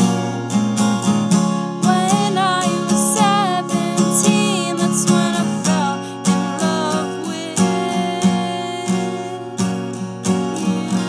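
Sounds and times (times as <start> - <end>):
acoustic guitar strumming: 0.0 - 11.0
woman singing: 1.8 - 11.0.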